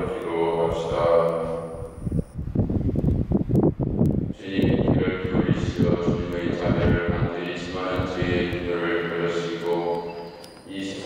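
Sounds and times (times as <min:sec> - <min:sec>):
man praying into a microphone: 0:00.0 - 0:01.9, 0:04.3 - 0:10.1, 0:10.7 - 0:11.0.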